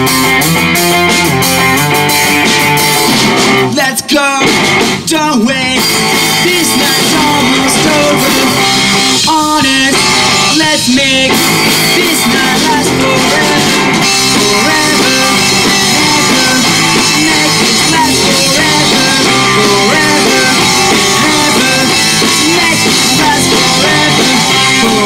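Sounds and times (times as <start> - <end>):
bass guitar: 0.0 - 25.0
drum kit: 0.0 - 25.0
electric guitar: 0.0 - 25.0.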